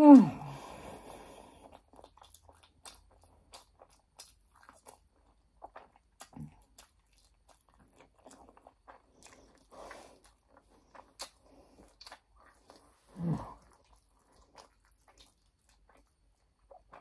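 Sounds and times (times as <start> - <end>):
person chewing food: 0.1 - 17.0.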